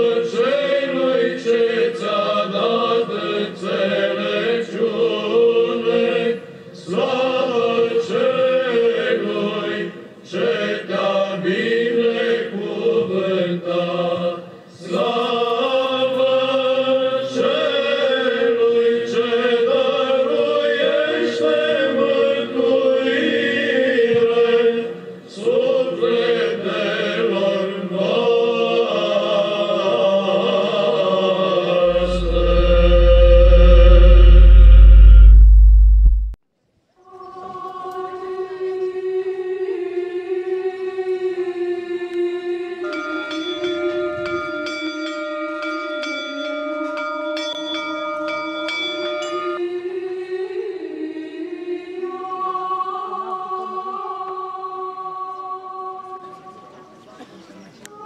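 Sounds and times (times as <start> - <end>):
choir chanting: 0.0 - 35.3, 37.1 - 44.5, 49.5 - 56.9
deep low rumble: 31.8 - 36.4.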